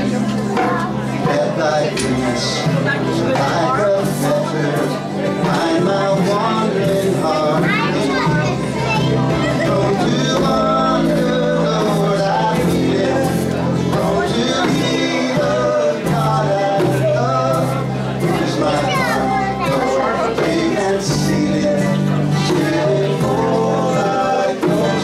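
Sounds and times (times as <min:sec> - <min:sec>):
children talking and playing: 0:00.0 - 0:25.0
high voices singing: 0:00.0 - 0:25.0
live band with guitars: 0:00.0 - 0:25.0.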